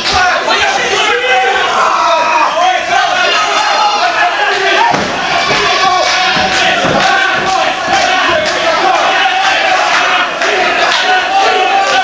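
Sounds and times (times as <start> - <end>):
crowd shouting and yelling: 0.0 - 12.0
dull thuds: 4.9 - 8.6.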